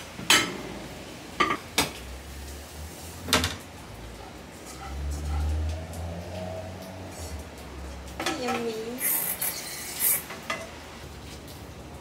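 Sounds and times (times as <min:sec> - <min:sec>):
hot wok sizzling: 0:00.0 - 0:12.0.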